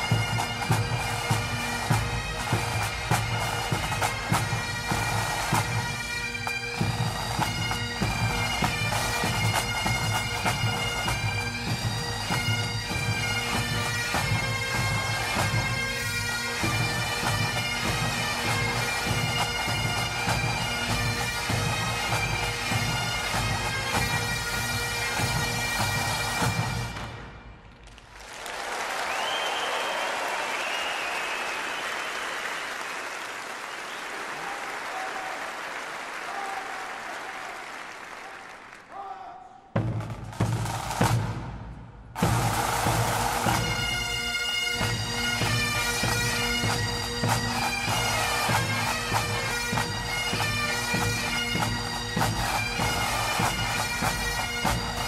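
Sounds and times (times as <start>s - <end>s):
bagpipe music: 0.0s - 27.6s, 42.2s - 55.0s.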